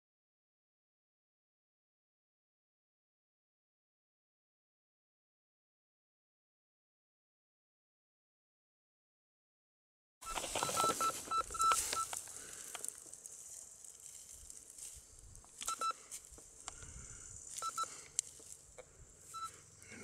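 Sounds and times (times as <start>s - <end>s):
metal detector beeping: 10.2s - 12.8s, 15.6s - 16.1s, 17.4s - 18.1s, 19.2s - 19.6s
rustling of soil and grass: 10.2s - 20.0s.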